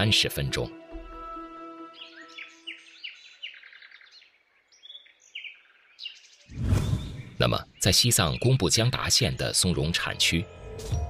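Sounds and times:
birds chirping: 0.0s - 10.8s.

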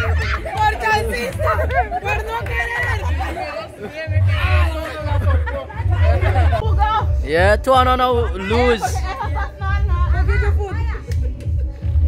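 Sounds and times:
background music with bass: 0.0s - 12.0s.

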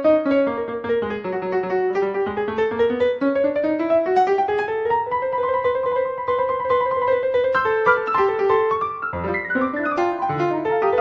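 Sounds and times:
solo piano run: 0.0s - 11.0s.

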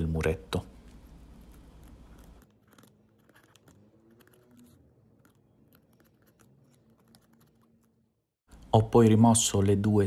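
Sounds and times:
craft knife scratching foam: 1.4s - 8.0s.

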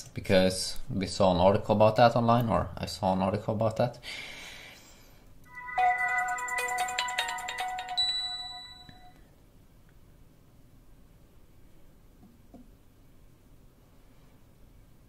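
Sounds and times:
smartphone boot-up chime: 5.5s - 9.2s.

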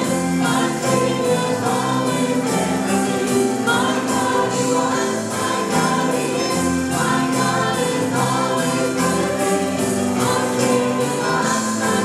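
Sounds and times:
drums: 0.0s - 12.0s
piano: 0.0s - 12.0s
singers in harmony: 0.0s - 12.0s.

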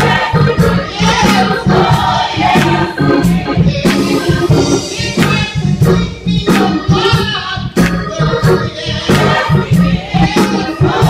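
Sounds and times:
bass line: 0.0s - 11.0s
gospel choir singing: 0.0s - 11.0s
steady beat: 0.0s - 11.0s.

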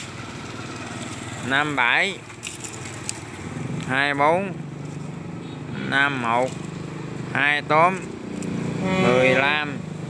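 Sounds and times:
small engine humming: 0.0s - 10.0s
person reading out numbers: 5.6s - 6.7s, 7.3s - 8.2s, 8.8s - 9.8s.

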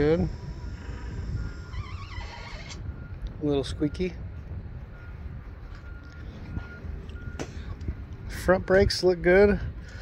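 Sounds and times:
wind rumble: 0.0s - 10.0s.

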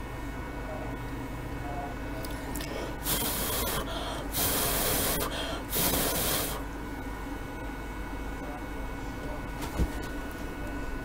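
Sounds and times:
short hissing bursts of air: 3.0s - 6.6s.

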